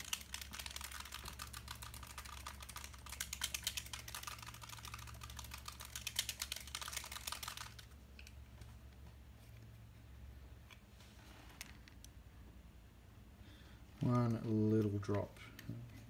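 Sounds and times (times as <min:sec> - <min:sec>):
paint bottle rattling when shaken: 0:00.0 - 0:08.4.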